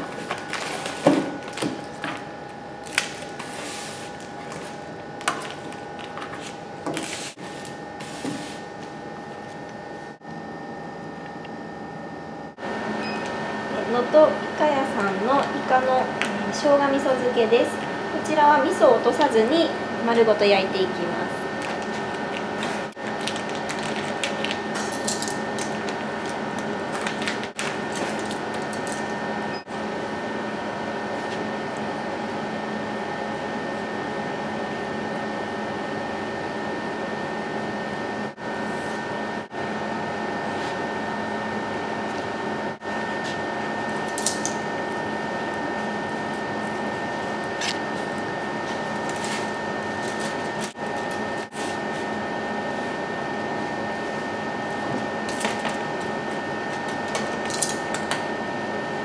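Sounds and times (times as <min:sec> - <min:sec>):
mechanical fan hum with whine: 0:00.0 - 0:59.0
plastic packaging crinkling: 0:21.6 - 0:29.0.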